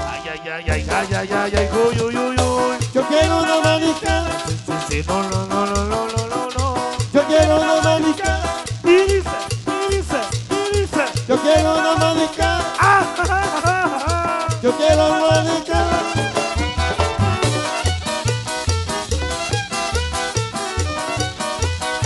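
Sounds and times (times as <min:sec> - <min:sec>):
live cumbia band playing: 0:00.0 - 0:22.0
upright bass pulsing: 0:00.0 - 0:22.0
violin melody: 0:15.8 - 0:22.0.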